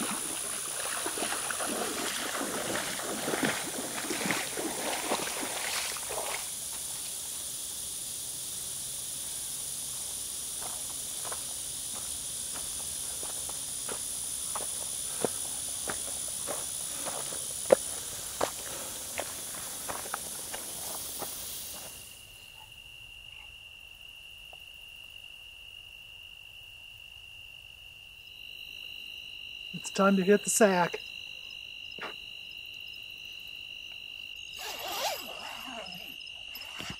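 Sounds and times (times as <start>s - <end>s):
footsteps crunching on a path: 0.0s - 6.9s, 10.0s - 22.1s
water sloshing: 0.0s - 6.9s
chorus of insects: 0.0s - 36.9s
steady insect trill: 0.0s - 36.9s.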